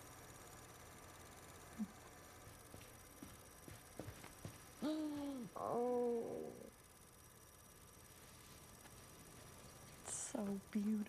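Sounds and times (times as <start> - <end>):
woman sobbing: 4.8 - 6.7.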